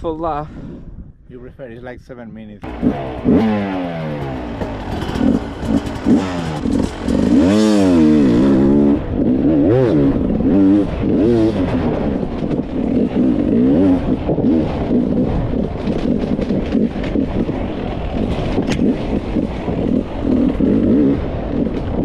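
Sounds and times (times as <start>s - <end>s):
dirt bike engine revving: 2.6s - 22.0s.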